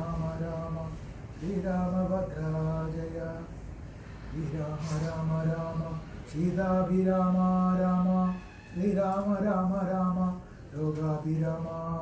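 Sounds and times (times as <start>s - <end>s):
man chanting into microphone: 0.0s - 3.6s, 4.3s - 12.0s.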